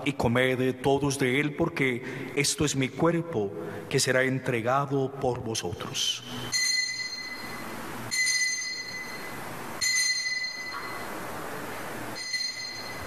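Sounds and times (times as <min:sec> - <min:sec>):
altar bell ringing: 0:06.3 - 0:11.3, 0:12.1 - 0:13.0.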